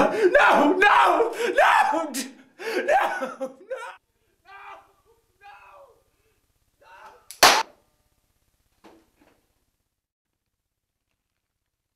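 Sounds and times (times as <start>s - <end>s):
person crying out: 0.0s - 6.0s, 6.8s - 7.3s
revolver gunshot: 7.4s - 7.7s.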